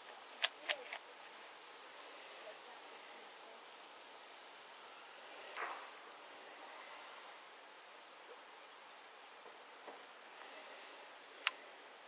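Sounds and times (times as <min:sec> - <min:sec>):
faint hiss: 0:00.0 - 0:12.0
sharp clicks: 0:00.4 - 0:01.0, 0:11.4 - 0:11.6.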